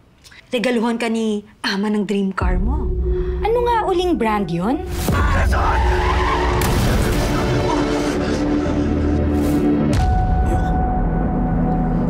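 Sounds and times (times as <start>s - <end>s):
car tyres screeching: 5.2s - 8.1s.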